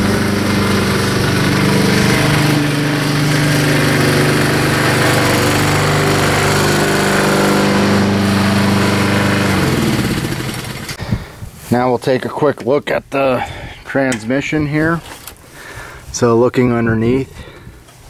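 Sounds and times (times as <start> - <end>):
lawn mower engine running: 0.0 - 11.0.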